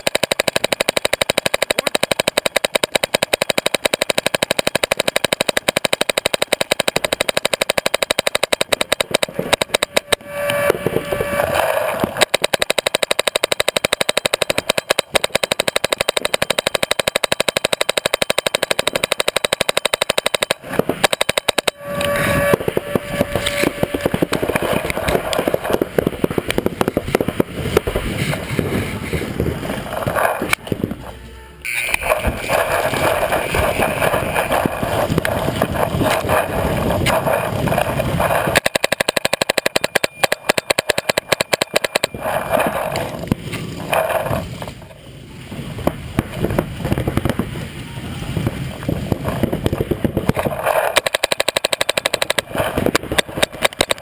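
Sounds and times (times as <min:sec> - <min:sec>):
paintball markers firing rapidly: 0:00.0 - 0:28.8, 0:31.7 - 0:44.8, 0:49.2 - 0:54.0.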